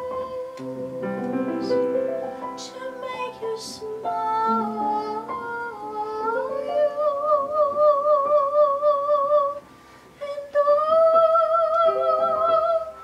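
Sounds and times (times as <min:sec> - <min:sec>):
soprano voice singing: 0:00.0 - 0:13.0
upright piano accompaniment: 0:00.0 - 0:13.0.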